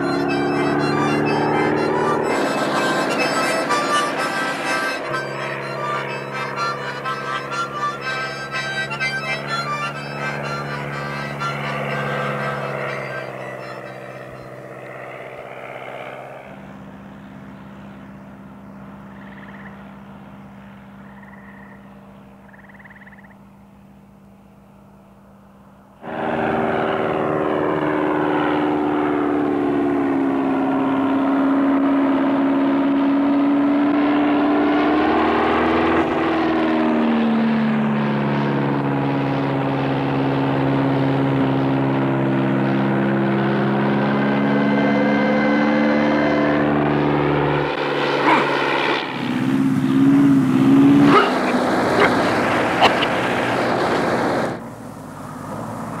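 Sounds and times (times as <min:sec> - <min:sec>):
music: 0:00.0 - 0:14.5
light plane engine and propeller: 0:00.0 - 0:56.0.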